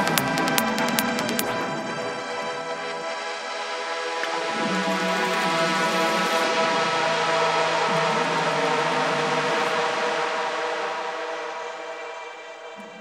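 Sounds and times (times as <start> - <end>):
sustained synth chord: 0.0 - 13.0.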